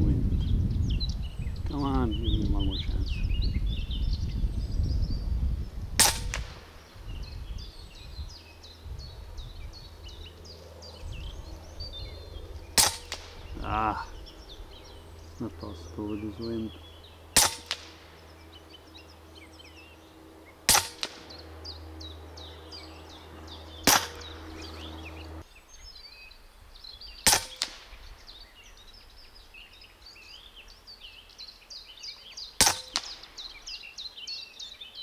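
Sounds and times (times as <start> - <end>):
air rifle shots: 6.0 - 6.8, 12.7 - 13.5, 17.3 - 18.2, 20.6 - 21.4, 23.8 - 24.4, 27.2 - 28.0, 32.6 - 33.4.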